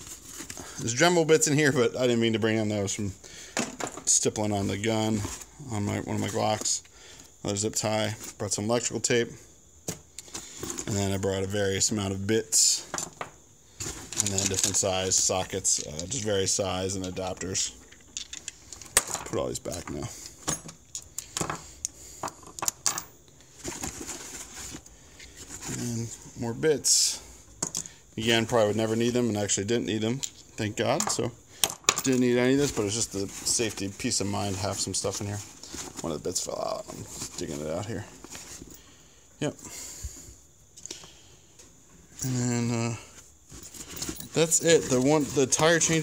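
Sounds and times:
metal tools clinking: 13.9s - 21.6s, 43.5s - 46.0s
faint rustling: 23.4s - 26.4s, 32.2s - 39.2s, 41.6s - 46.0s
hand rummaging in fabric bag: 43.5s - 46.0s.

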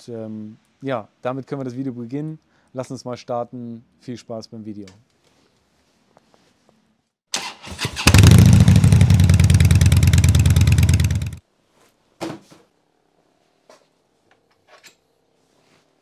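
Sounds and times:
motorcycle engine running: 8.0s - 11.4s.

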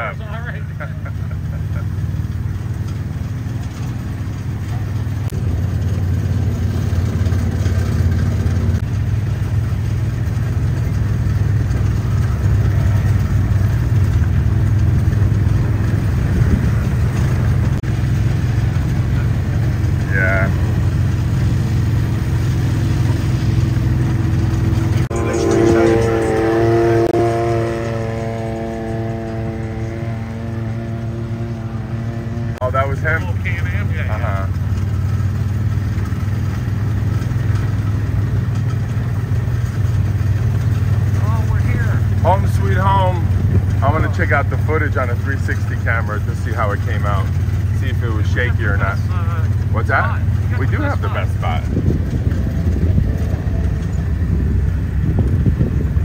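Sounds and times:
golf cart engine drone: 0.0s - 56.0s
loud high-pitched sound: 25.1s - 30.4s.

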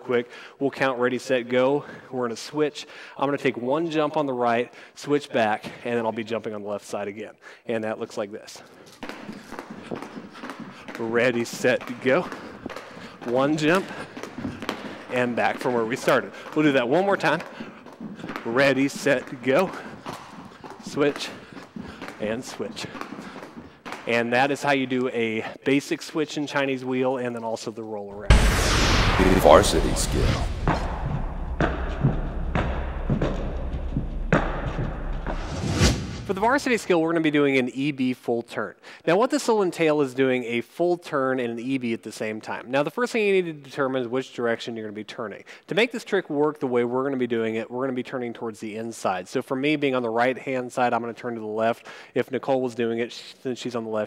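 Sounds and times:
jump ropes slapping floor: 8.6s - 26.1s, 30.6s - 36.9s
feet landing: 8.7s - 24.6s, 28.3s - 36.6s.

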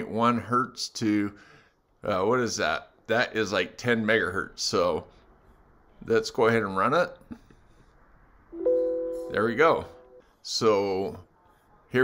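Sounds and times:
steady electronic tone: 8.5s - 10.2s.

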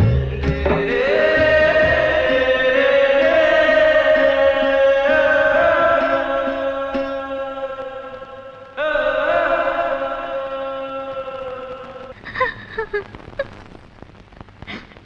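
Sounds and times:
chant-like film score notes: 0.0s - 12.2s.

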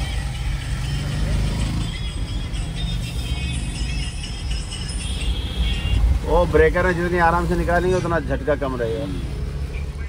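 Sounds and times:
music playing: 0.0s - 8.5s
car engine rumble and road noise: 0.0s - 10.0s.

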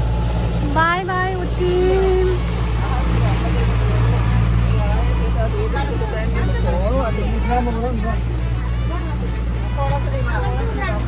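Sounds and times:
motorboat engine droning: 0.0s - 11.0s
people talking faintly: 1.4s - 11.0s.

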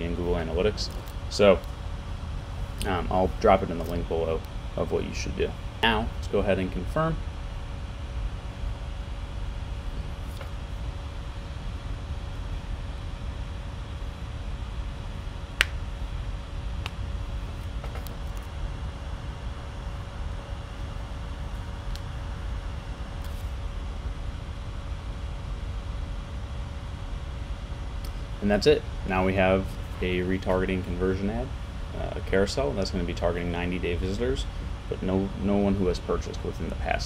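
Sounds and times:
faint steady hum: 0.0s - 37.0s
low room rumble: 0.0s - 37.0s.

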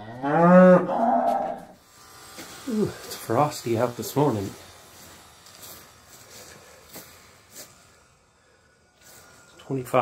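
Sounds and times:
light hiss: 1.6s - 10.0s
footsteps on frosty grass: 2.3s - 8.1s.

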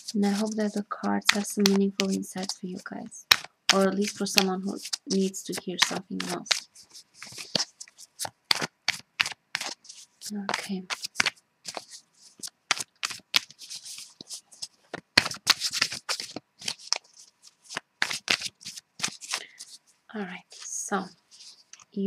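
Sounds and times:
person speaking: 0.0s - 7.7s, 9.6s - 12.5s, 18.3s - 22.0s
cards being shuffled: 0.0s - 19.8s, 20.4s - 22.0s.

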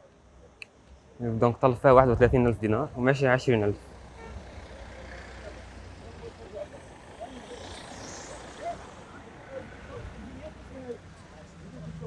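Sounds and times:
low traffic rumble: 0.0s - 12.0s
distant people talking: 4.4s - 12.0s.

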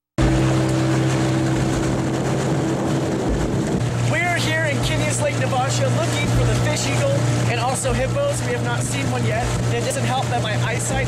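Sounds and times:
boat motor running: 0.2s - 11.0s.

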